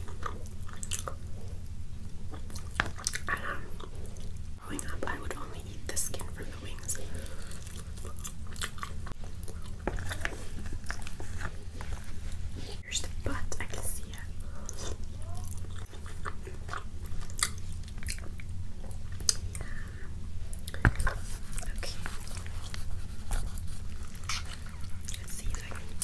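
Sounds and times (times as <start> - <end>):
chewing with lip smacks: 0.0 - 4.4, 6.8 - 12.8, 14.4 - 19.8, 20.4 - 26.0
steady low hum: 0.0 - 26.0.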